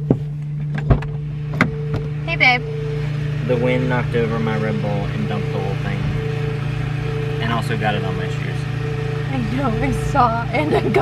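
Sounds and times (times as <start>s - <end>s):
car cabin low hum: 0.0s - 11.0s.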